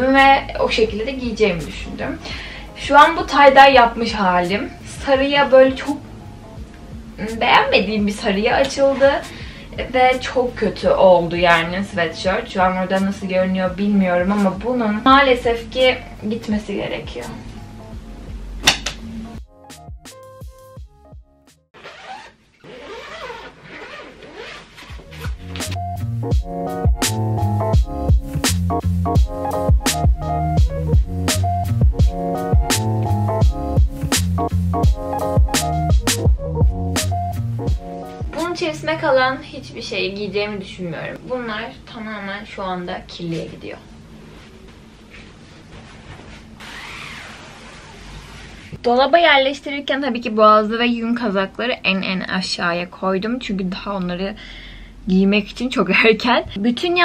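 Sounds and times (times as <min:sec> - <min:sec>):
background music sustained notes: 0:00.0 - 0:21.7, 0:25.0 - 0:41.3
clothes rustling: 0:21.8 - 0:25.9, 0:44.2 - 0:48.8.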